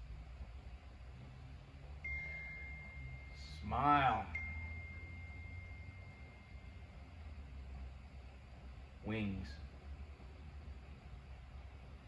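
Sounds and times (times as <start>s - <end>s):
steady low hum: 0.0s - 12.0s
faint thin high tone: 2.0s - 7.0s.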